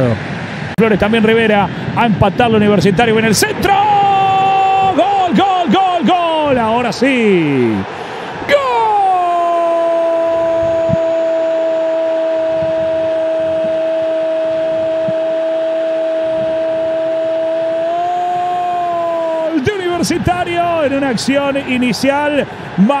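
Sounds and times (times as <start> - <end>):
commentator's long goal cry: 8.4 - 14.6, 15.2 - 19.8.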